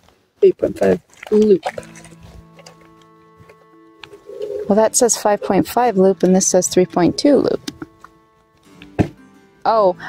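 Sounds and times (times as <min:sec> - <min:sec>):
soft sustained chord: 0:01.7 - 0:10.0.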